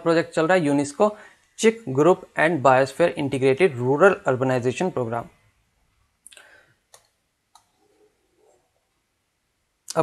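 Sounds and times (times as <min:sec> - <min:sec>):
computer mouse clicks: 0:06.3 - 0:07.9.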